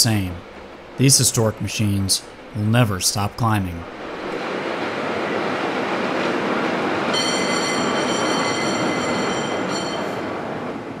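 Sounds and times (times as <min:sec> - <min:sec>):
cable cars rumbling on track: 0:00.0 - 0:11.0
high-pitched metallic squeal: 0:07.1 - 0:10.3.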